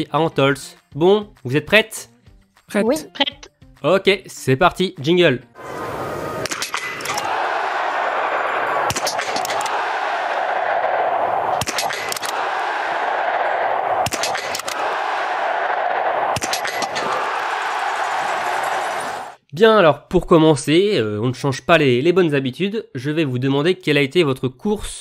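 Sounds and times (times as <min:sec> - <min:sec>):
crowd din: 0:05.6 - 0:19.4
quick rifle shots: 0:08.9 - 0:09.7, 0:11.6 - 0:12.4, 0:14.0 - 0:14.8, 0:16.3 - 0:17.0.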